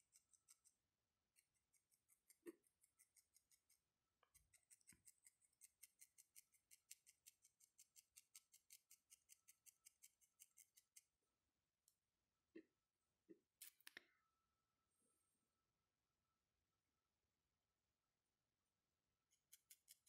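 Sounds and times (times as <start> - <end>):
felting needle clicking: 0.0 - 11.1, 19.3 - 20.0.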